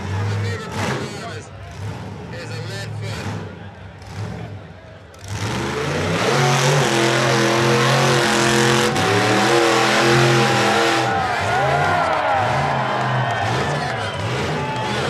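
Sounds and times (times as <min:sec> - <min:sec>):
buggy engine revving hard: 0:00.0 - 0:15.0.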